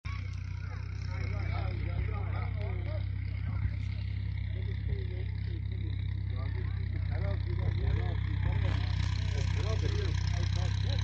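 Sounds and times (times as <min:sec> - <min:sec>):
distant voices: 0:00.1 - 0:11.0
steady low rumble: 0:00.1 - 0:11.0.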